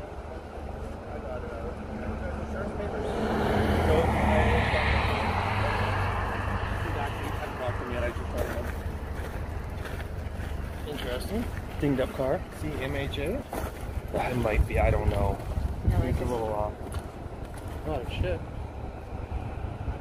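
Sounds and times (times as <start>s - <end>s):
vehicle passing on highway: 0.0s - 20.0s.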